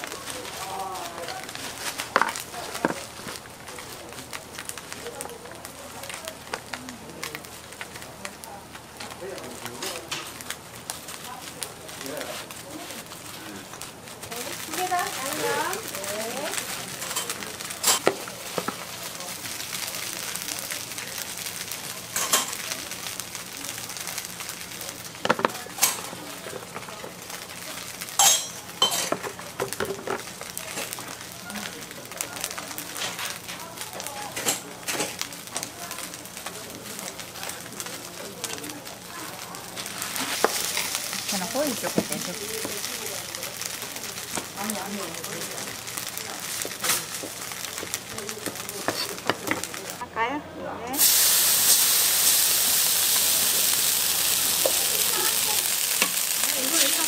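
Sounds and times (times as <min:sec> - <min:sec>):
food sizzling: 0:00.0 - 0:50.3, 0:50.9 - 0:57.0
metal utensils clinking: 0:22.2 - 0:22.6, 0:28.2 - 0:30.2.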